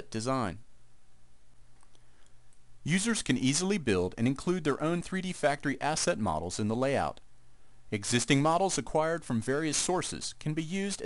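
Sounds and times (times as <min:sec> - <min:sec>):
man narrating: 0:00.0 - 0:00.7, 0:02.8 - 0:07.2, 0:07.9 - 0:11.0
low room hum: 0:00.0 - 0:11.0.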